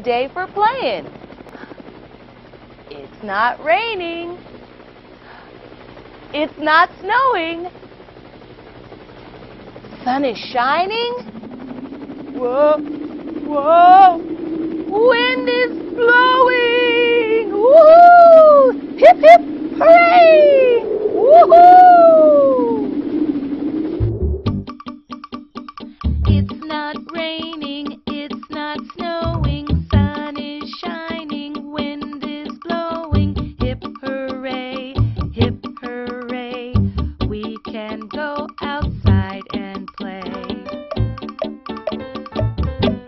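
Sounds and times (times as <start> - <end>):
helicopter rotor chop: 0.0 - 43.0
woman crying whoa: 17.1 - 22.9
person speaking: 18.6 - 20.8.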